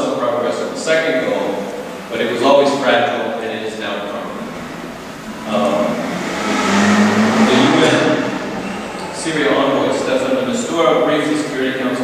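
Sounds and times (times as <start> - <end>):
man lecturing: 0.0 - 4.4, 9.2 - 12.0
rush of noise: 1.8 - 12.0.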